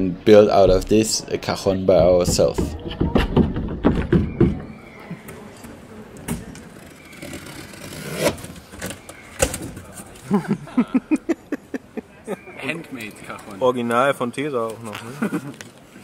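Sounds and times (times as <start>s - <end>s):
street background noise: 0.0s - 16.0s.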